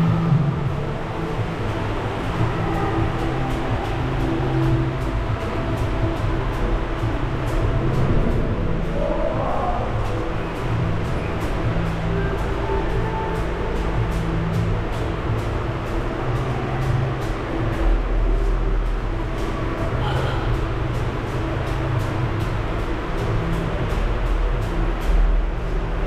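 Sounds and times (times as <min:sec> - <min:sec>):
music with heavy bass beat: 0:00.0 - 0:26.0.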